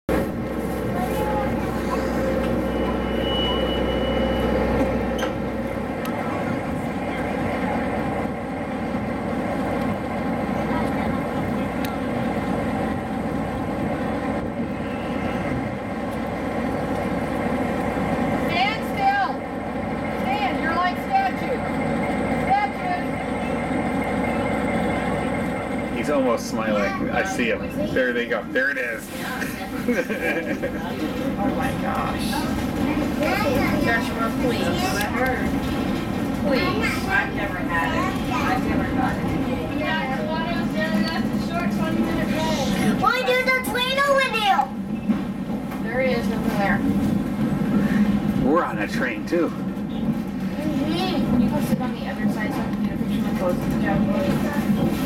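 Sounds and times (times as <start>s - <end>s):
diesel locomotive idling: 0.1s - 55.0s
children's voices: 26.6s - 27.2s, 32.2s - 44.9s, 50.4s - 55.0s.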